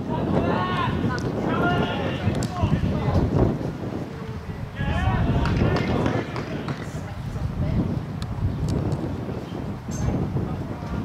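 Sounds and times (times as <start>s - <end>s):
distant shouting voices: 0.0s - 3.0s, 4.0s - 7.1s
wind on microphone: 0.0s - 11.0s.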